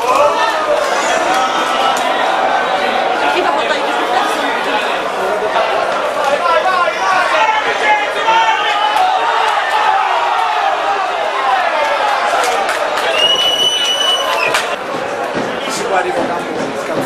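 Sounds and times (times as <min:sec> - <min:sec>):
men talking: 0:00.0 - 0:09.5
crowd chatter: 0:00.0 - 0:17.0.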